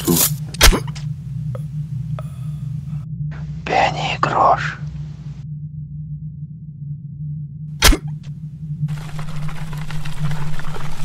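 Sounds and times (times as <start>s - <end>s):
steady low hum: 0.0s - 11.0s
rushing noise with crackles: 8.9s - 11.0s.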